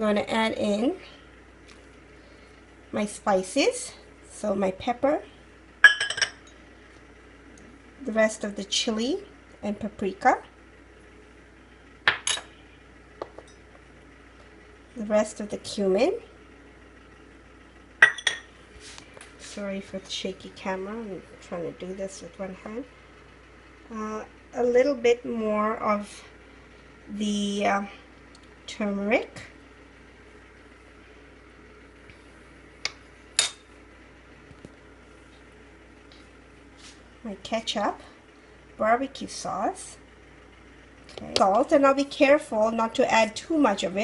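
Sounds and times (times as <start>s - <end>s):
spoon clinking ceramic pot: 5.8s - 6.4s.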